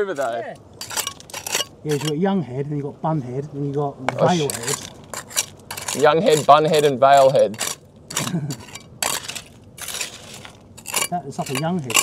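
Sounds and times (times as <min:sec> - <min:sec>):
gravel crunching and scraping: 0:00.0 - 0:02.2, 0:04.1 - 0:12.0.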